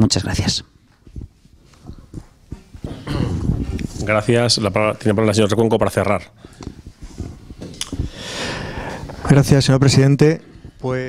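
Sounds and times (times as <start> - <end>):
microphone handling noise: 1.0 - 5.0, 6.3 - 11.0.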